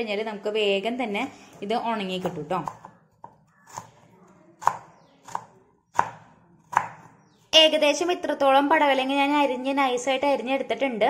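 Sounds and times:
knife chopping on wooden board: 0:02.2 - 0:07.2.

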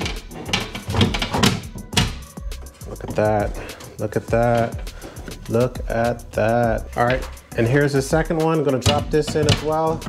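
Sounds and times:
metal lid knocking and scraping: 0:00.0 - 0:03.5, 0:08.6 - 0:10.0.

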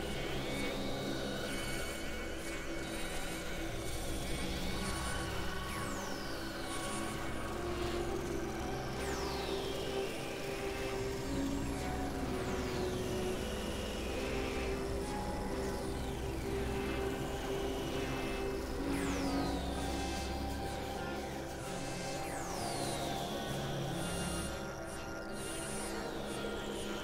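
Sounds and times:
low synthesizer drone: 0:00.0 - 0:27.0.

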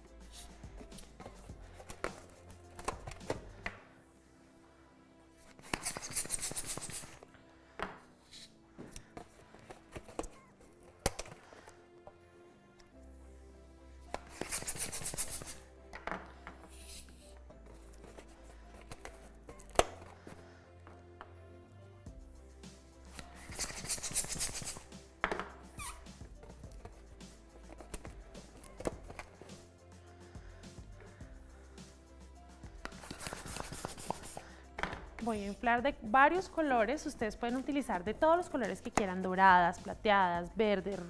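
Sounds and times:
background music: 0:00.0 - 0:41.0
balloon pump hissing: 0:14.2 - 0:15.6, 0:23.1 - 0:24.9, 0:25.7 - 0:29.6, 0:32.7 - 0:35.4.

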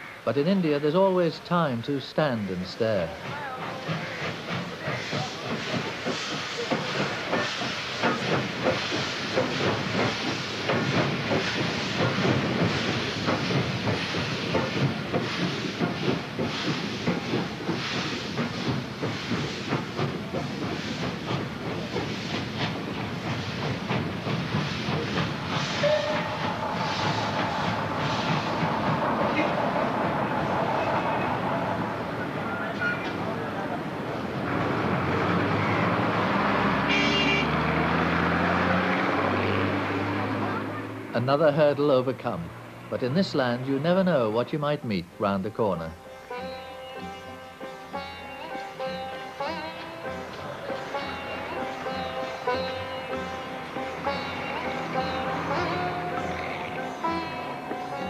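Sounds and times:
hiss of steam: 0:00.7 - 0:36.7
train wheels clattering over rail joints: 0:02.0 - 0:58.0
bus engine running: 0:05.9 - 0:44.4, 0:46.1 - 0:58.0.

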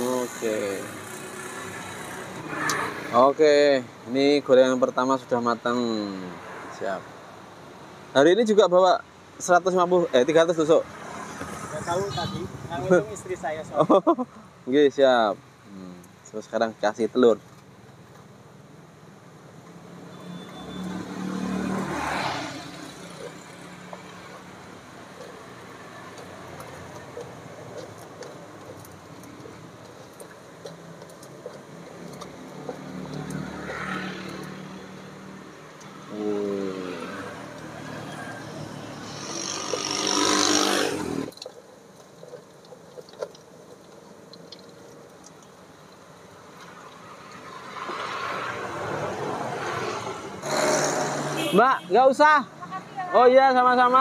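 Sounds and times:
motorbike engines passing: 0:00.0 - 0:07.3, 0:10.1 - 0:14.3, 0:19.6 - 0:41.4, 0:46.4 - 0:54.0.

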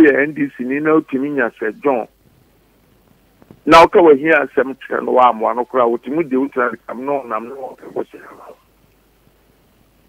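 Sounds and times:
man talking over telephone: 0:00.0 - 0:02.1, 0:03.6 - 0:08.6.

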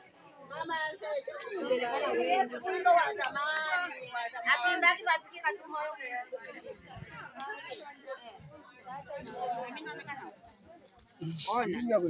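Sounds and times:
people talking at once: 0:00.0 - 0:12.0.

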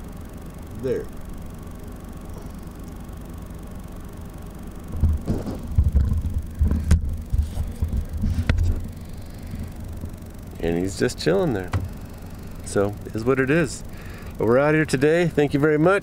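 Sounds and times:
steady low rumble: 0:00.0 - 0:15.7
microphone handling thumps and rubbing: 0:04.9 - 0:09.8, 0:11.6 - 0:12.0.

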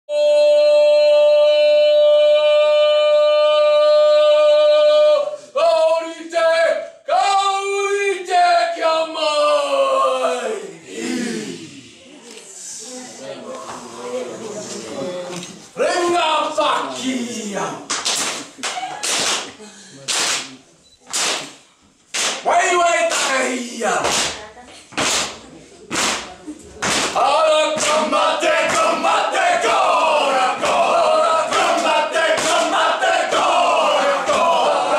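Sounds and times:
men chanting and shouting: 0:00.1 - 0:12.1, 0:15.7 - 0:17.9, 0:22.2 - 0:24.2, 0:27.1 - 0:34.9
hand slaps and foot stamps: 0:17.9 - 0:22.4, 0:24.0 - 0:27.2, 0:27.8 - 0:29.0, 0:31.5 - 0:32.7.

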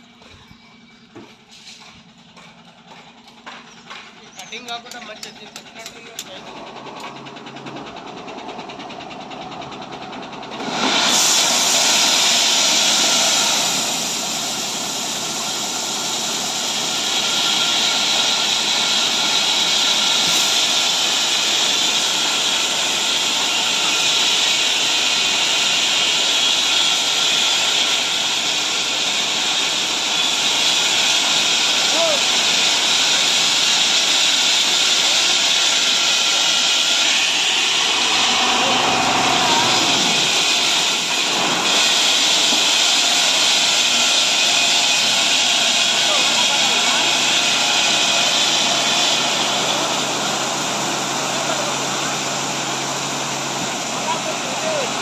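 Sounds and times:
tipper truck hissing rush: 0:00.2 - 0:55.0.

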